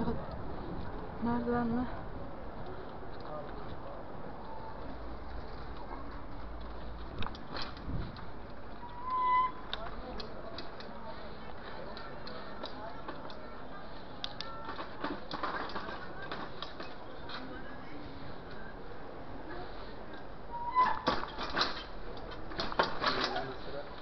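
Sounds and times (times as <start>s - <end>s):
street noise with voices: 0.0s - 24.0s
bike clicks and rattles: 5.2s - 13.5s, 14.2s - 17.5s, 20.1s - 24.0s.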